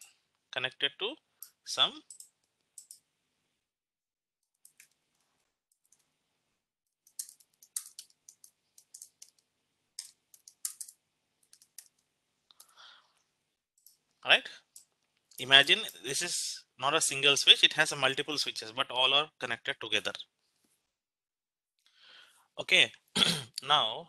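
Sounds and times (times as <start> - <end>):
keyboard typing: 1.4 - 3.0, 4.4 - 6.1, 7.0 - 12.7.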